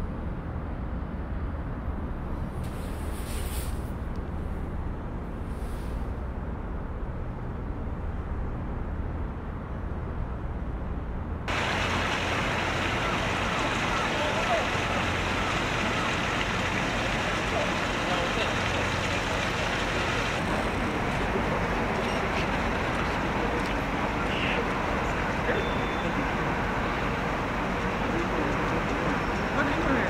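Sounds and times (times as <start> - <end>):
outdoor background noise: 0.0 - 30.0.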